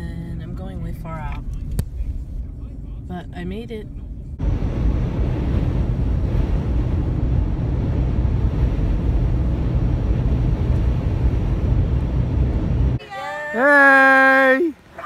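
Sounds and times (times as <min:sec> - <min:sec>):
car road rumble: 0:00.0 - 0:13.0
wind noise: 0:04.0 - 0:13.0.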